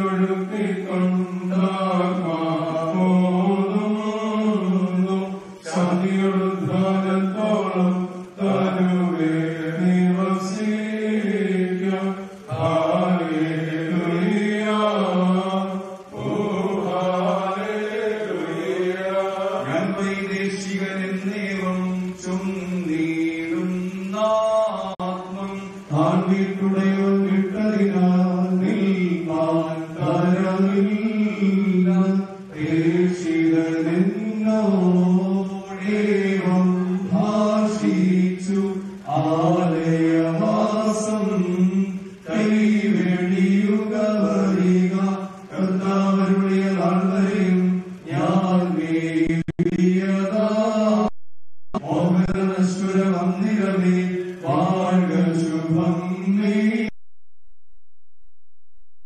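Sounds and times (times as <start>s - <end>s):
man chanting over a microphone: 0.0s - 51.1s, 51.8s - 56.9s.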